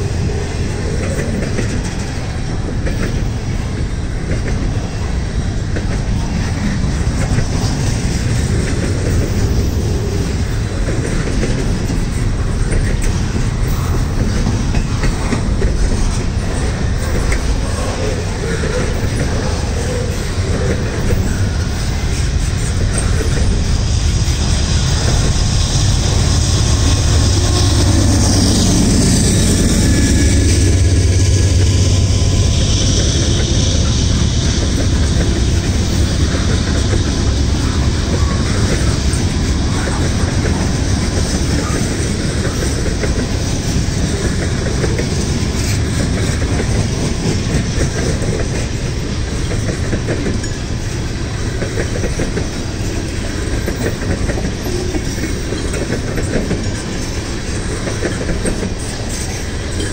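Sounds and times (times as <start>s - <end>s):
locomotive engine drone: 0.0s - 59.9s
train wheels clacking on rails: 0.0s - 59.9s.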